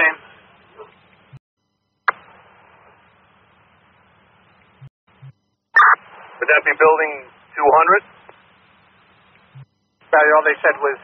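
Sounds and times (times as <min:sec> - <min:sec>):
faint radio hiss: 0:00.0 - 0:04.9, 0:05.8 - 0:11.0
radio voice: 0:05.8 - 0:08.1, 0:10.1 - 0:11.0.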